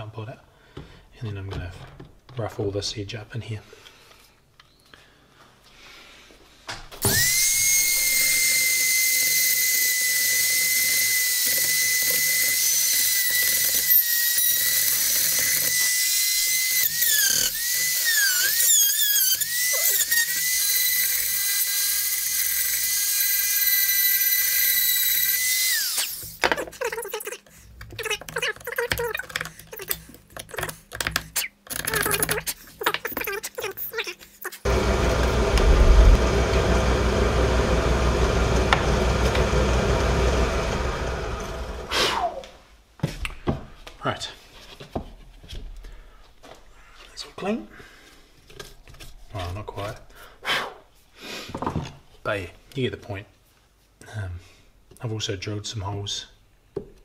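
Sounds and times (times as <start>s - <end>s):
rotary tool grinding whine: 7.0s - 26.4s, 34.6s - 41.9s
deep steady rushing noise: 34.7s - 36.8s.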